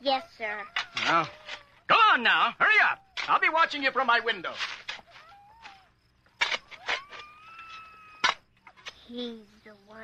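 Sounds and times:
muffled high-pitched cry: 0:00.0 - 0:01.9, 0:05.0 - 0:06.0, 0:06.6 - 0:08.9.

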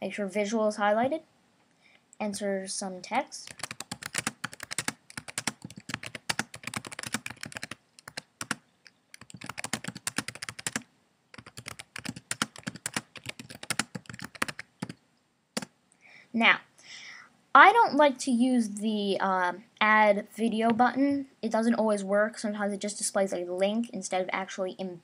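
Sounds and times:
typing on computer keyboard: 0:03.4 - 0:15.0.

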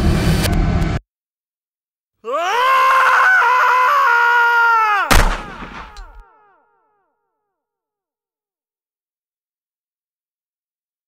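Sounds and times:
person screaming: 0:02.2 - 0:07.1
loud bang with rumble: 0:05.1 - 0:06.2.

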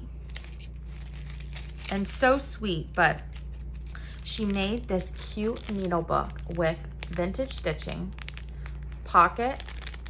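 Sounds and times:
steady low hum: 0:00.0 - 0:10.0
packaging crinkling: 0:00.1 - 0:10.0.

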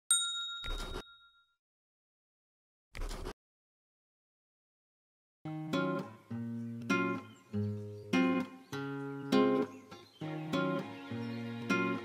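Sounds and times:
bright bell-like ding: 0:00.1 - 0:01.6.

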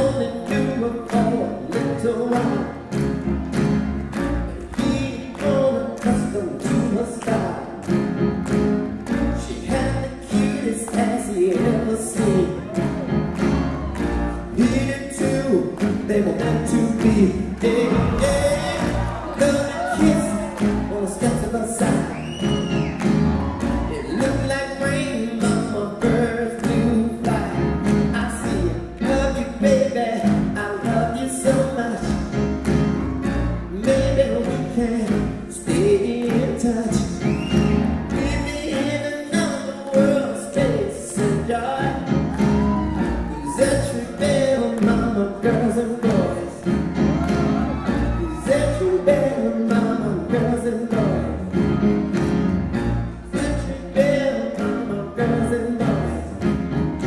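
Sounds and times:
person singing: 0:00.0 - 0:03.2, 0:04.2 - 0:08.1, 0:09.1 - 0:52.2, 0:53.2 - 0:57.0
piano playing rhythmic chords: 0:00.0 - 0:57.0.

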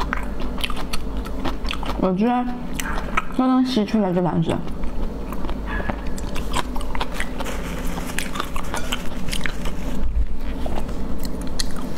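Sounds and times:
chewing: 0:00.0 - 0:02.1, 0:02.7 - 0:03.4, 0:04.5 - 0:11.9
sucking shellfish meat: 0:04.7 - 0:11.9.

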